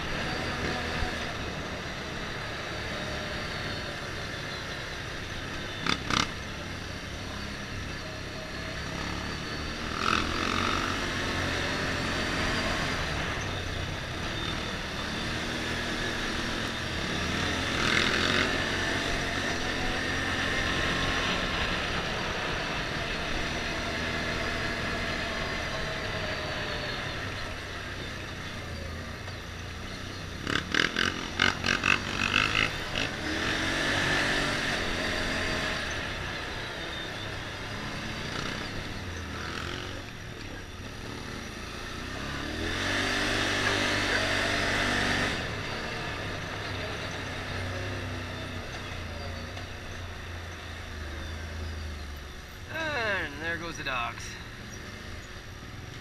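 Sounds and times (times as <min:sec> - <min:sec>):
atv engine running: 0:00.0 - 0:56.0.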